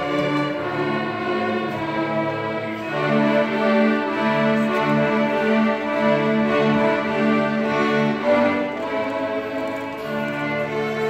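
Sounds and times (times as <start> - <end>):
string orchestra playing: 0.0 - 11.0.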